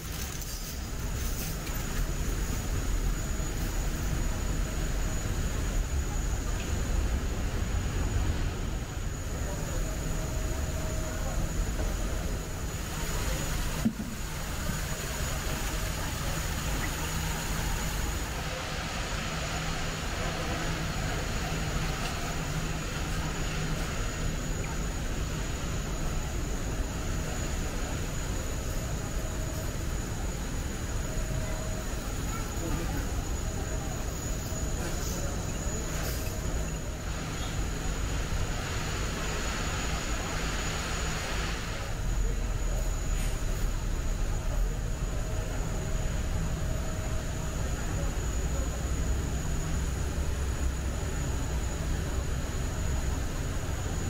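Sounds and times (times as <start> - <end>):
rushing background noise: 0.0 - 54.0.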